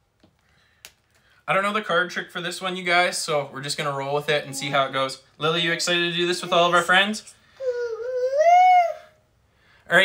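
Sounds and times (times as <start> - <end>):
girl's high-pitched vocal sound: 7.6 - 9.2.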